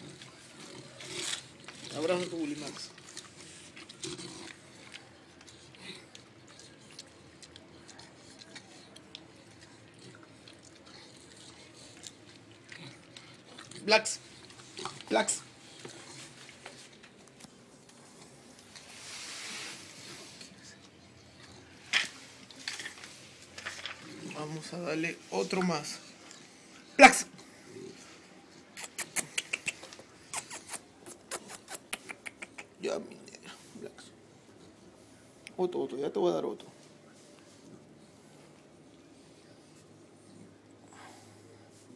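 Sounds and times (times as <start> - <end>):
dog chewing: 0.0 - 19.0, 20.0 - 33.4.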